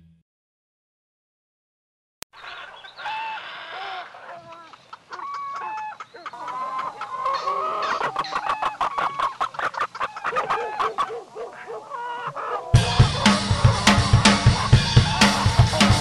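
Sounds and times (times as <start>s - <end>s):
chickens clucking: 2.4s - 16.0s.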